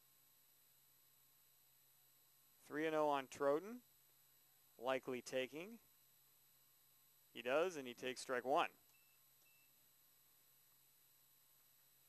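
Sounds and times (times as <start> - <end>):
faint steady hiss: 0.0 - 12.0
faint short high beeps: 8.9 - 9.8.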